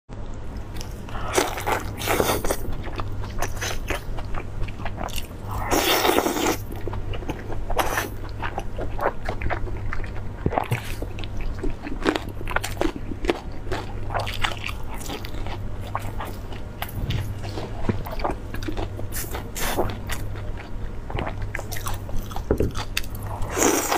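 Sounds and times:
steady low hum: 0.1s - 23.9s
chewing and biting food: 0.6s - 23.9s.

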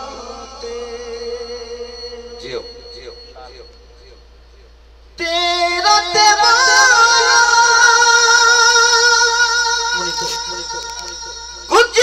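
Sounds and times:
man singing long held note: 0.0s - 3.3s, 5.2s - 12.0s.

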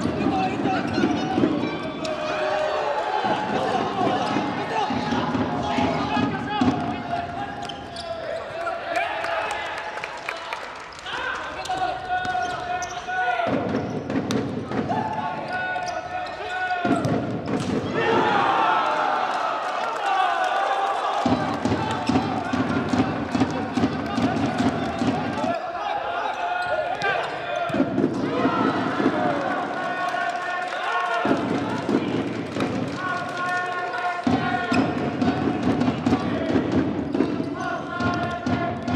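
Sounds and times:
crowd noise: 0.0s - 38.9s
players shouting: 0.0s - 38.9s
sneakers squeaking on wooden floor: 7.6s - 8.6s, 11.6s - 14.7s, 15.3s - 17.6s
shoe squeaks: 11.6s - 14.0s.

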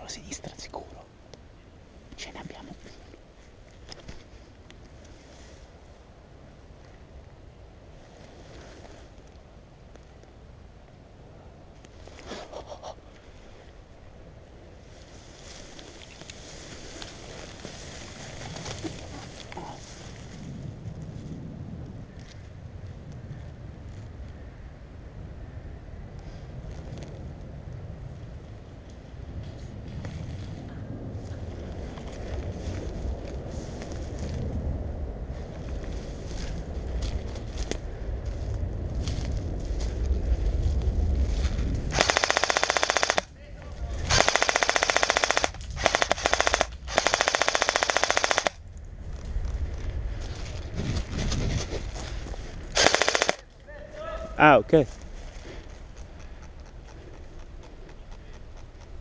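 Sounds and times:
wind rumble on microphone: 0.0s - 42.4s, 43.1s - 52.8s
airsoft gun firing bursts: 41.9s - 43.3s, 44.1s - 48.6s, 52.8s - 53.4s.

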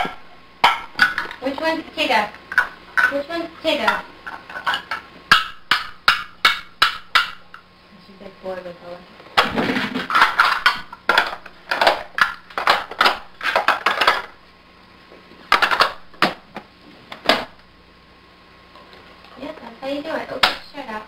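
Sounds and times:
plastic toy blocks clacking: 9.9s - 14.3s.

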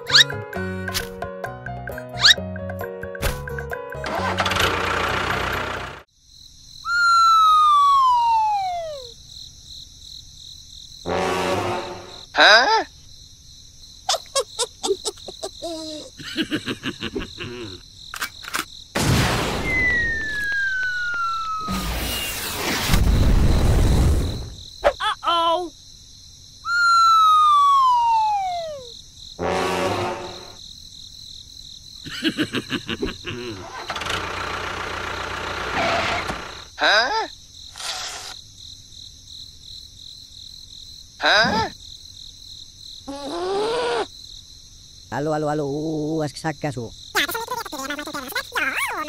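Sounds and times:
engine starting and running: 4.0s - 6.1s, 33.7s - 36.7s
cricket chirping: 4.8s - 49.0s
person laughing: 12.4s - 12.9s, 14.1s - 17.8s, 32.0s - 33.7s.

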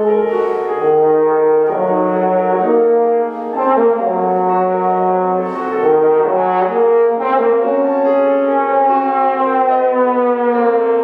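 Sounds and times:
bass trombone glissando: 0.0s - 11.0s.

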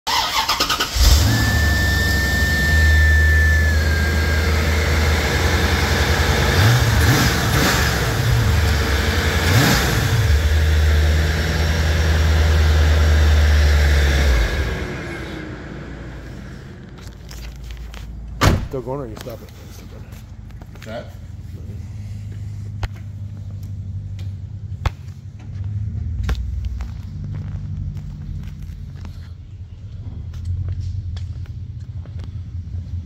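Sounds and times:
engine revving: 0.1s - 16.6s
car engine cranking and idling: 0.1s - 33.0s
hum winding down: 0.9s - 16.9s
high steady squeal: 1.2s - 4.8s.

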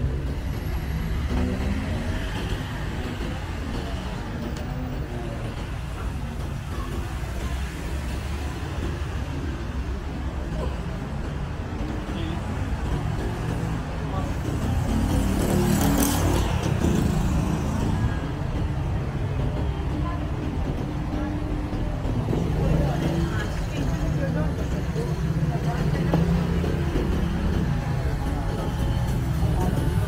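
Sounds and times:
cars and scooters passing: 0.0s - 30.0s
pedestrians talking: 0.0s - 30.0s.

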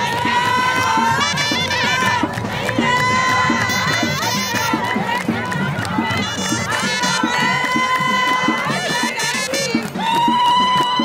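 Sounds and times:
crowd cheering: 0.0s - 11.0s
quick steady drumbeat: 0.0s - 11.0s
wind instruments holding high notes: 0.0s - 11.0s.

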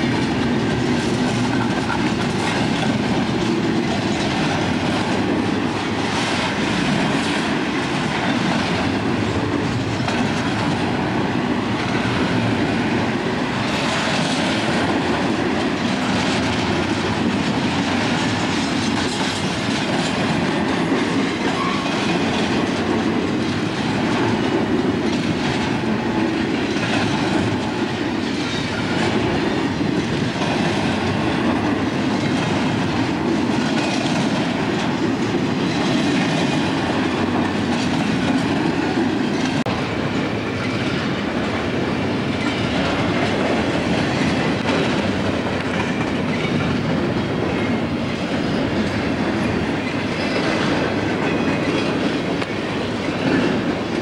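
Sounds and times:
train wheels rumbling on rails: 0.0s - 54.0s
wheels clacking over rail joints: 0.0s - 54.0s.

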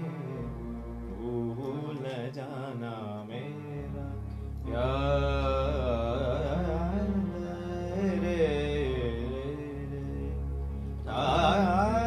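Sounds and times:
electronic keyboard accompaniment: 0.0s - 12.0s.

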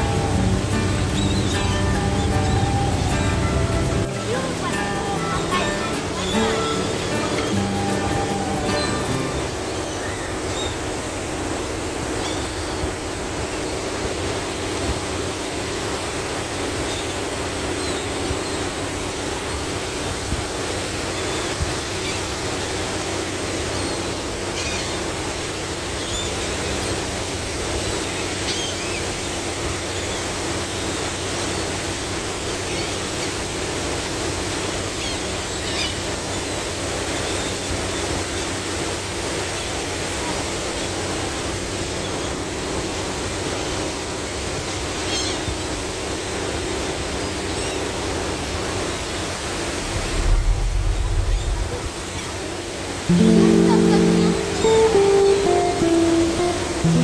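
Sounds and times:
ship engine droning: 0.0s - 24.5s, 25.2s - 57.0s
churning wake water: 0.0s - 57.0s
gulls calling: 0.0s - 57.0s
wind: 0.0s - 57.0s.

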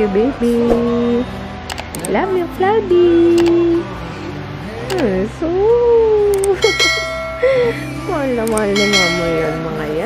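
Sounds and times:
low music bed: 0.0s - 10.0s
bright bell-like chime: 6.6s - 8.0s, 8.8s - 9.8s.

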